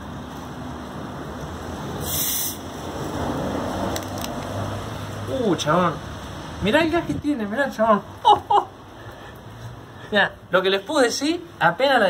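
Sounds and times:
gas hissing from soda bottle: 2.0 - 2.7.

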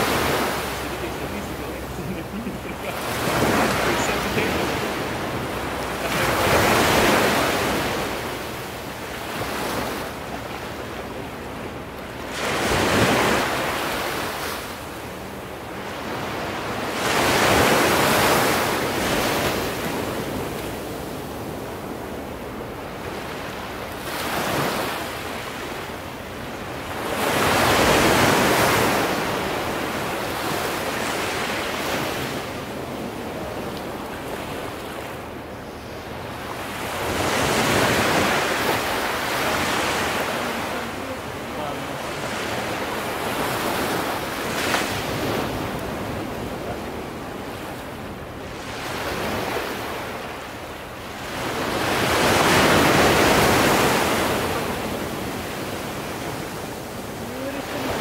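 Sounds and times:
ocean waves breaking: 0.0 - 58.0.

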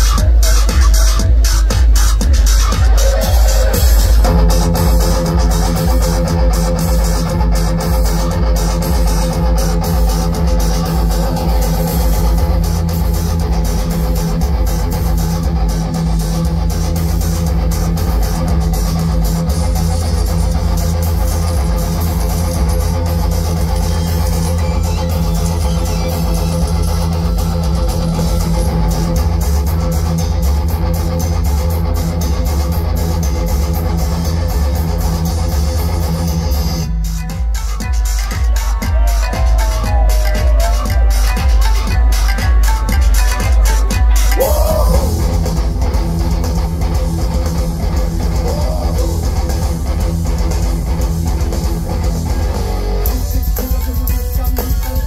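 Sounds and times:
rock band playing live: 0.0 - 55.0.

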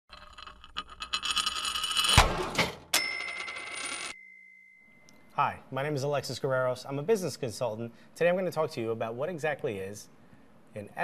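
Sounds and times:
bright bell-like ding: 4.2 - 5.1.

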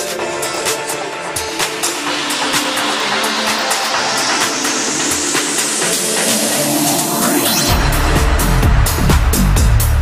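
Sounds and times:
rising noise sweep: 2.8 - 9.4.

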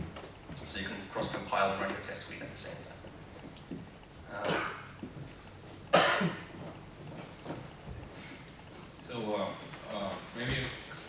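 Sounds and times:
person coughing: 4.3 - 5.0, 5.9 - 6.5.

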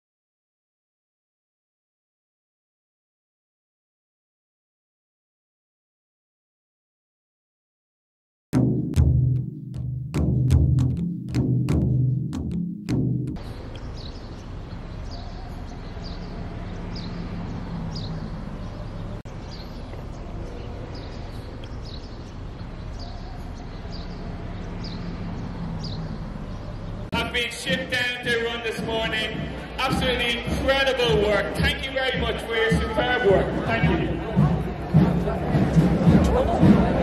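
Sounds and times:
marching band drums beating: 8.6 - 13.4, 24.1 - 37.0.

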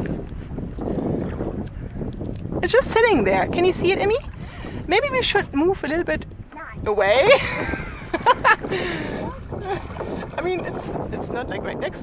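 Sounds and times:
water splashing against canoe: 0.0 - 12.0
wind buffeting microphone: 0.0 - 12.0.

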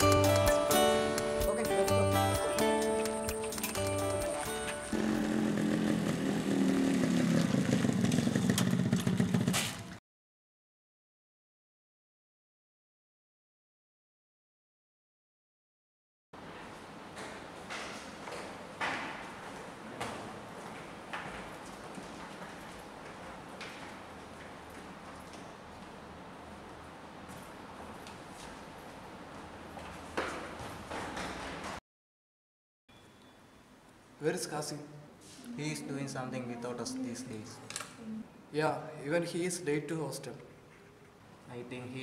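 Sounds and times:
guitar background music: 0.0 - 5.0
motorcycle engine running: 4.9 - 10.0
shoe footsteps on tiled floor: 16.4 - 31.8.

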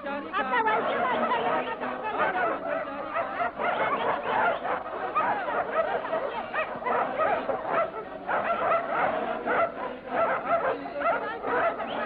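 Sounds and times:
dogs barking and yelping: 0.4 - 12.0.

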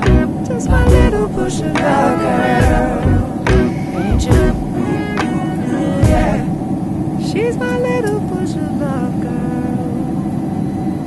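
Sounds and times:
jet airliner cabin drone: 0.0 - 11.0.

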